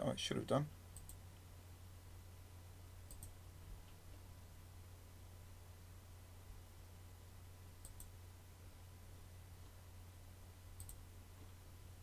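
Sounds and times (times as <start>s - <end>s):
low steady hum: 0.0s - 12.0s
computer mouse clicks: 1.0s - 1.2s, 3.1s - 3.4s, 7.8s - 8.2s, 10.8s - 11.0s.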